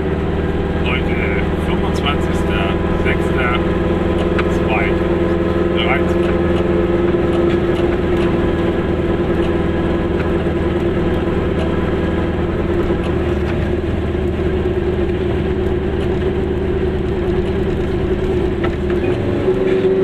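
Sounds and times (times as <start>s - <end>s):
two-stroke car engine running: 0.0s - 20.0s.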